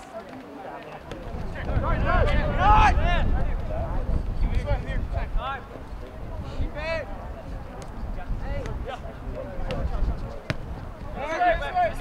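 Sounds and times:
ball being kicked: 0:09.6 - 0:10.8.

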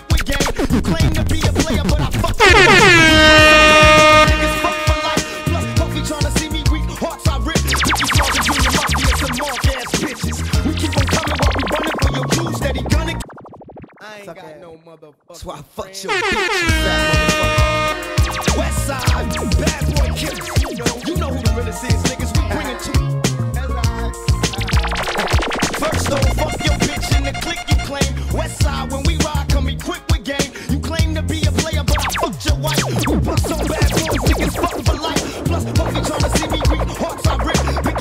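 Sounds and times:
dancehall music with drum hits: 0:00.1 - 0:13.2, 0:16.2 - 0:30.6, 0:31.4 - 0:38.0
air horn sound effect: 0:02.4 - 0:06.8, 0:07.8 - 0:10.2, 0:16.1 - 0:21.8, 0:24.7 - 0:28.6, 0:32.8 - 0:37.5.

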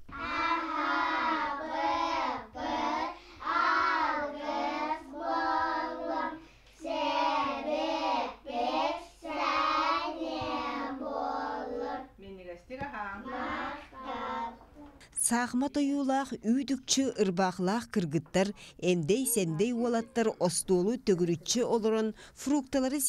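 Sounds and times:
children singing: 0:00.0 - 0:12.2, 0:13.2 - 0:14.7.

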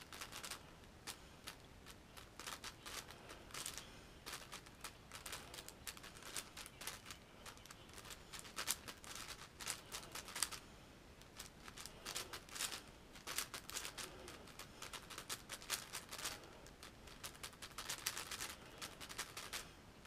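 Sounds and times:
puzzle cube clicking as turned: 0:02.2 - 0:10.6, 0:11.3 - 0:19.6.

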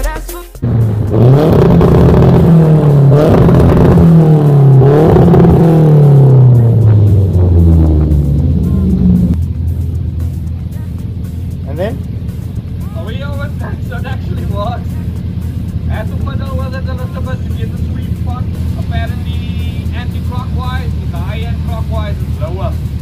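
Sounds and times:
engine idling: 0:00.0 - 0:23.0
engine revving against rev limiter: 0:00.6 - 0:09.4, 0:13.3 - 0:23.0.

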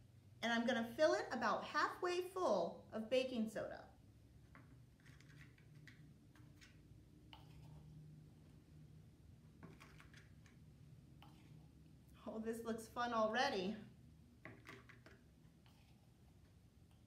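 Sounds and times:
spoon scraping in small jar: 0:05.0 - 0:08.0, 0:09.6 - 0:10.6.

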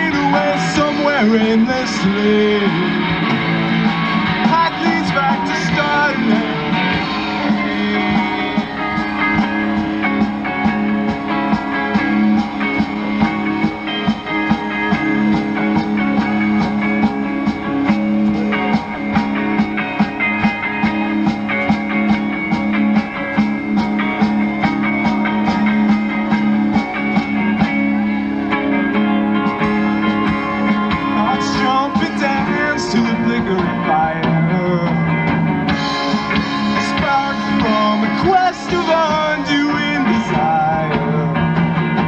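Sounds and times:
lead guitar bending notes: 0:00.0 - 0:42.0
live rock band playing: 0:00.0 - 0:42.0.

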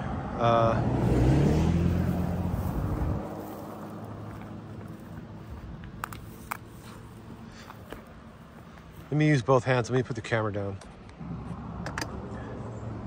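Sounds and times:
vehicle engine passing: 0:00.0 - 0:09.1.

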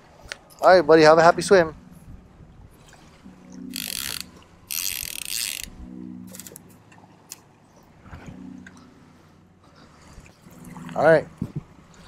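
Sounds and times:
fishing reel clicker buzzing: 0:03.6 - 0:06.6.

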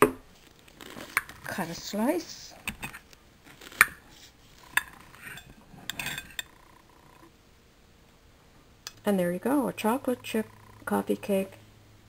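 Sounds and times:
quiet handling of dishes: 0:04.2 - 0:07.3
knife clinking on plate: 0:04.8 - 0:06.5.

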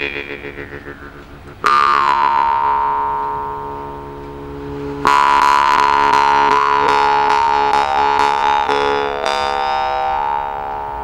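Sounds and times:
jaw harp drone: 0:00.0 - 0:11.0.

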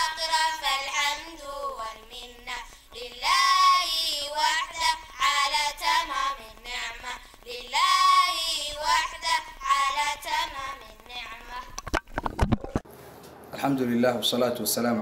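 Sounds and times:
high voice singing unaccompanied: 0:00.0 - 0:11.9.

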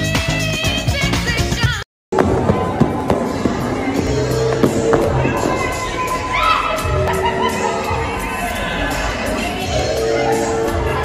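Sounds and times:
music over speakers: 0:00.0 - 0:11.0.

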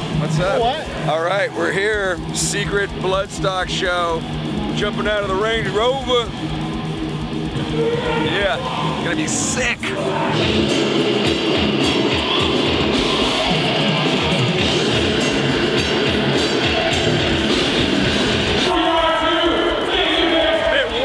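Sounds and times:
electric guitars: 0:00.0 - 0:21.0
fast drum beat: 0:00.0 - 0:21.0.

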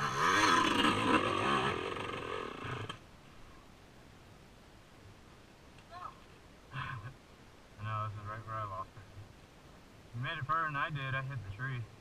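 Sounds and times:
man speaking: 0:07.8 - 0:09.0, 0:10.2 - 0:12.0.

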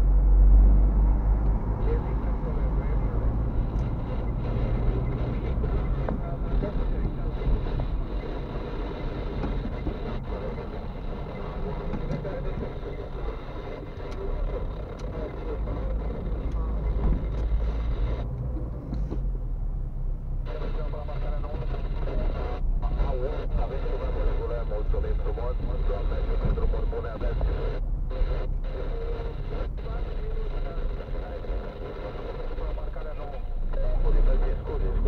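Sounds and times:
low rumble of road and engine: 0:00.0 - 0:35.0
voices talking: 0:01.8 - 0:18.2, 0:20.4 - 0:35.0.

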